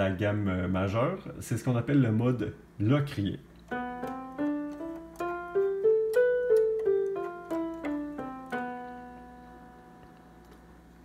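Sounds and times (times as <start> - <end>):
keyboard piano scale: 3.6 - 11.0.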